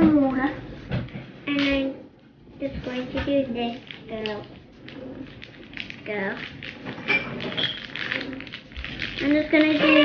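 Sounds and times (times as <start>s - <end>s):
plastic packaging crinkling: 3.6s - 10.0s.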